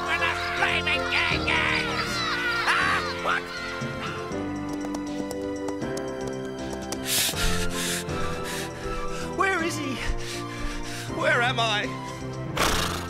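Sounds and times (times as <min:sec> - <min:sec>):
background music: 0:00.0 - 0:13.0
horse breathing harshly: 0:06.8 - 0:09.4.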